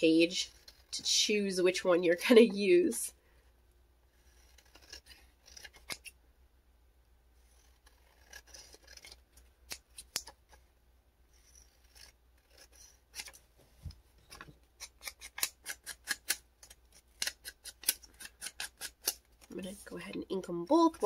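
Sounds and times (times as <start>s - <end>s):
scissors snipping paper: 4.2s - 6.2s, 7.5s - 10.6s, 11.4s - 13.4s, 14.8s - 19.6s.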